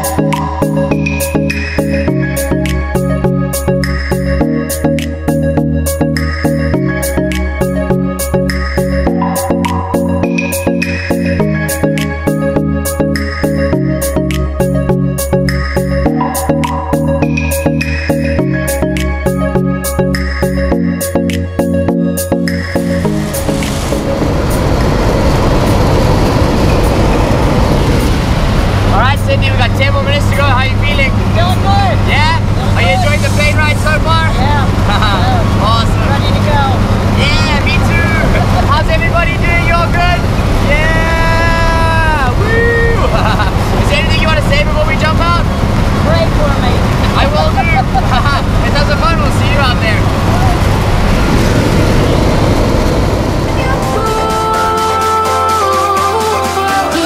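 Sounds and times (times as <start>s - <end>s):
music with steady beat: 0.0s - 24.2s, 53.7s - 57.0s
plane engines droning: 0.0s - 55.7s
steady rushing noise: 22.2s - 56.2s
people calling out: 40.7s - 43.1s.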